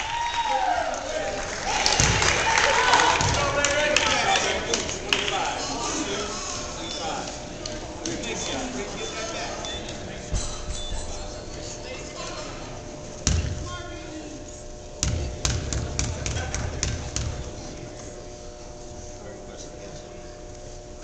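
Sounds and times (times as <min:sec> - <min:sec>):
crowd chatter: 0:00.6 - 0:21.0.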